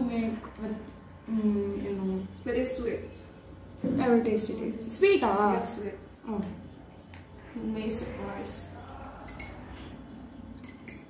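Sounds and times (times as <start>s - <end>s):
teaspoon clinking against a mug: 9.2s - 9.8s, 10.6s - 11.0s.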